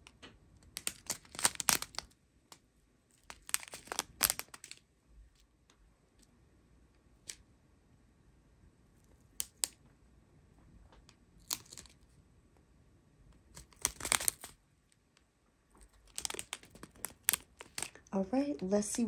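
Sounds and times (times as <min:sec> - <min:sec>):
plastic bags crinkling: 0:00.8 - 0:02.1, 0:03.2 - 0:04.8, 0:13.6 - 0:14.6, 0:15.8 - 0:18.1.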